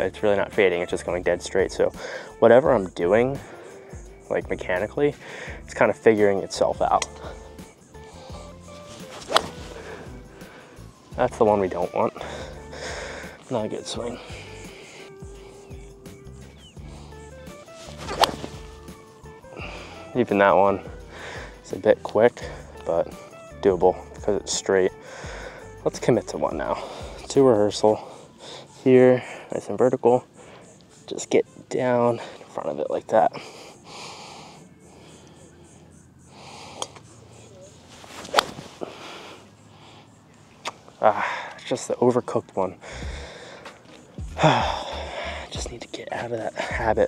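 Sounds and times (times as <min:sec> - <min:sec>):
soft background music: 0:00.0 - 0:47.0
golf club striking ball: 0:09.1 - 0:10.0, 0:17.8 - 0:19.0, 0:38.2 - 0:38.6.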